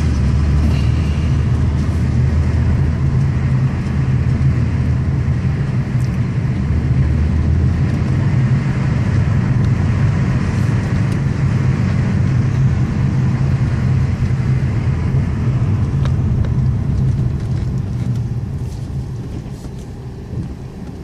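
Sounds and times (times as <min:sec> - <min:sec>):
car engine and tyres rumbling: 0:00.0 - 0:21.0.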